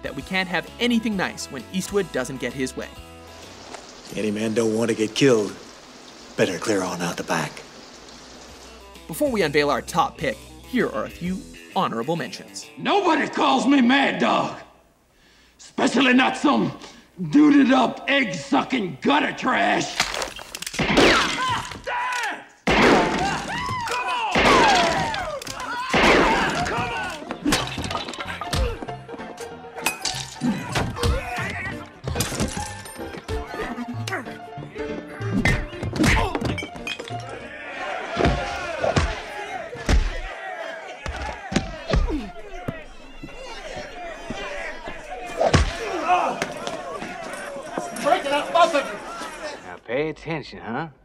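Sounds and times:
voices shouting: 21.2 - 32.0, 37.2 - 49.8
sharp impacts and gunshots: 22.7 - 23.3, 25.9 - 26.6
scuffle: 41.0 - 49.6.

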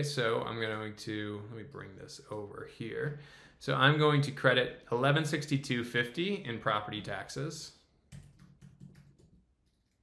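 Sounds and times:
faint keyboard typing: 8.1 - 10.0.

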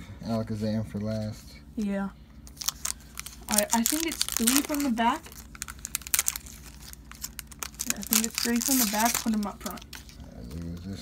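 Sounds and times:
foil wrapper crinkling: 2.4 - 11.0.

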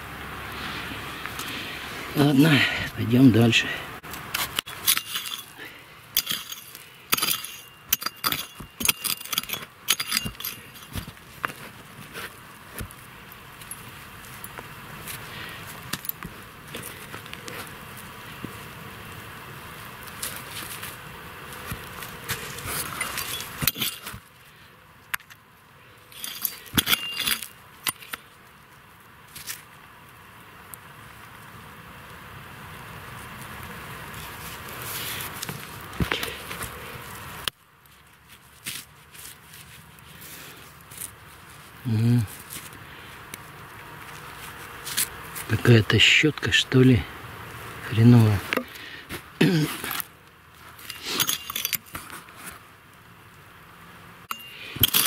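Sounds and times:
hand tool digging stony soil: 2.2 - 18.6, 20.0 - 24.4, 26.0 - 28.4, 34.1 - 47.0, 47.9 - 52.6, 54.3 - 55.0
metal blade clinking on pebbles: 4.6 - 11.2, 22.7 - 24.3, 26.1 - 28.2, 50.8 - 52.0, 54.3 - 55.0.

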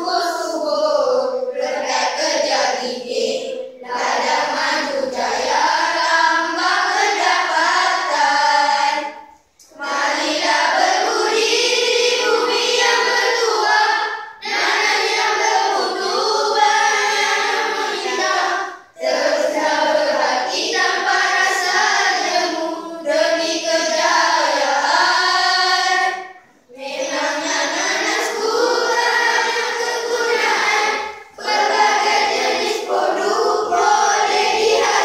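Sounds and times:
children singing in unison: 0.0 - 35.0.

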